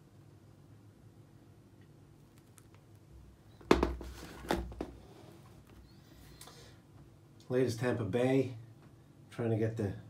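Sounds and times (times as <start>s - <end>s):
plastic helmet knocking on wooden floor: 3.6s - 5.0s.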